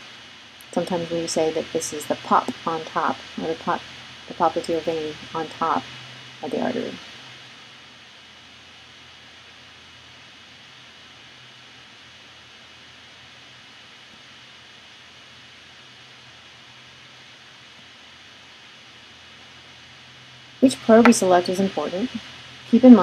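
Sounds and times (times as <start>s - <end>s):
faint background hiss: 0.0s - 23.0s
low electrical hum: 0.0s - 23.0s.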